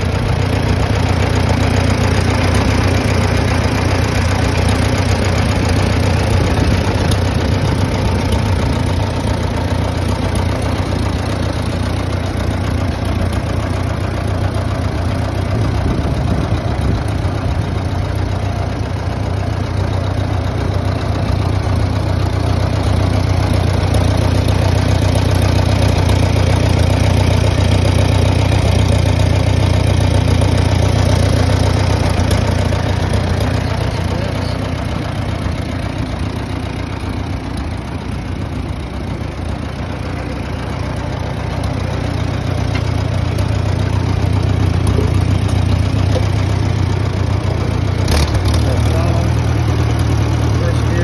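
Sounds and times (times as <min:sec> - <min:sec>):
tractor engine idling: 0:00.0 - 0:51.0.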